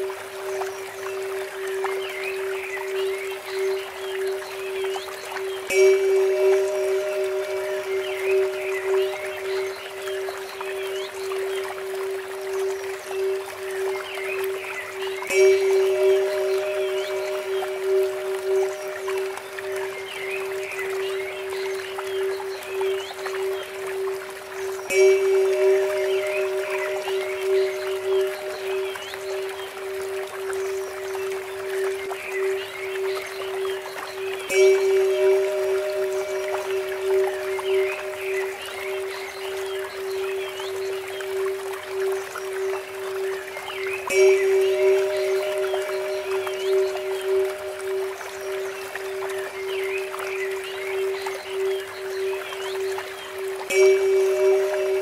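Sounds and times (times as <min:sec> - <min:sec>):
birds chirping: 0:00.0 - 0:55.0
water fountain trickling: 0:00.0 - 0:55.0.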